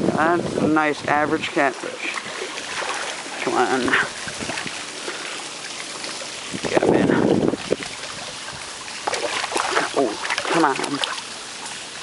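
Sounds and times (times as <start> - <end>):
wind noise on microphone: 0.0 - 1.6, 2.7 - 4.9, 6.4 - 8.8.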